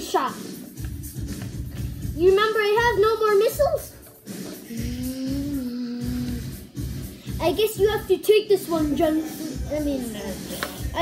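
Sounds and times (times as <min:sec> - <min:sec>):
background music with low beat: 0:00.0 - 0:11.0.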